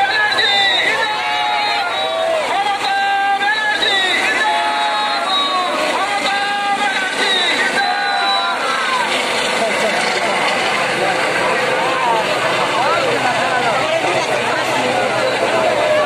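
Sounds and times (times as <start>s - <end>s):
crowd shouting: 0.0s - 16.0s
helicopter flying overhead: 0.0s - 16.0s.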